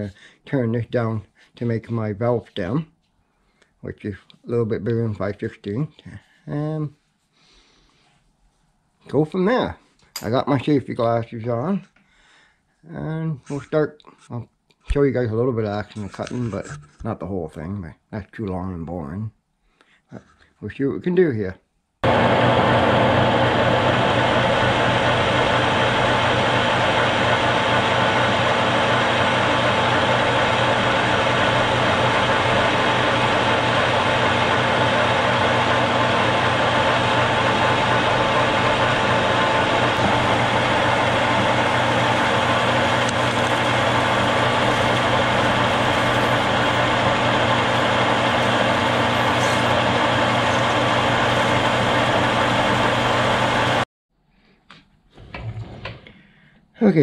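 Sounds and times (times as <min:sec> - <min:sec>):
lathe cutting noise: 0:22.0 - 0:53.8
metal lathe running: 0:22.0 - 0:53.8.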